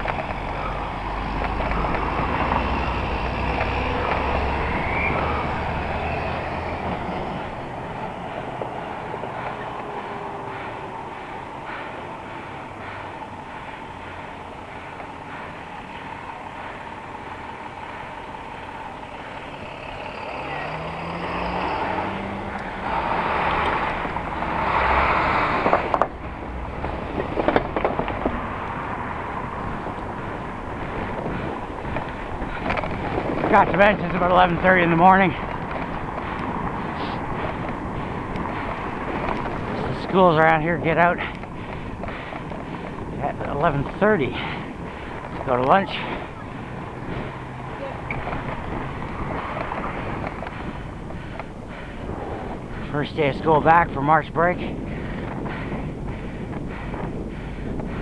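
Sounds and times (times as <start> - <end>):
tyre noise: 0.0 - 58.0
vehicle engines: 0.0 - 58.0.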